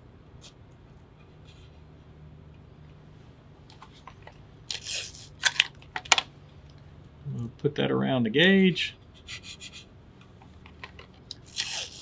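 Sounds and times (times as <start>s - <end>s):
paper tape ripping: 4.7s - 5.5s, 11.4s - 12.0s
tape dispenser handling clicks: 4.7s - 6.2s.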